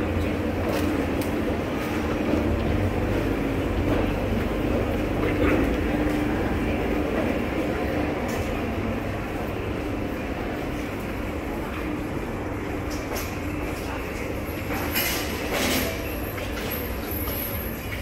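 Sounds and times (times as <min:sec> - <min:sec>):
low hum and rumble: 0:00.0 - 0:15.6
background chatter of shoppers: 0:00.0 - 0:18.0.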